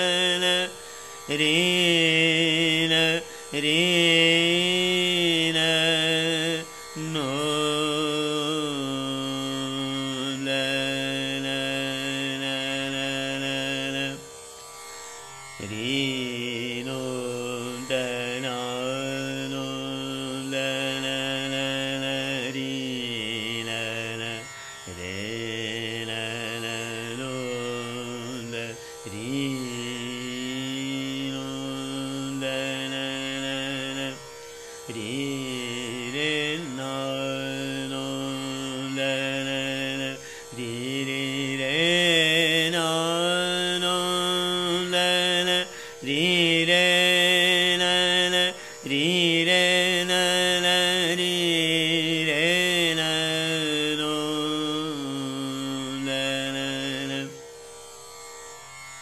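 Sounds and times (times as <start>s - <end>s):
man singing long notes: 0.0s - 14.2s, 15.6s - 57.4s
tanpura drone: 0.0s - 59.0s.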